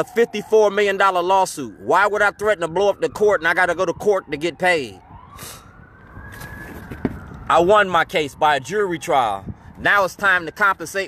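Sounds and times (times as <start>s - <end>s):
faint siren wailing: 0.0s - 11.0s.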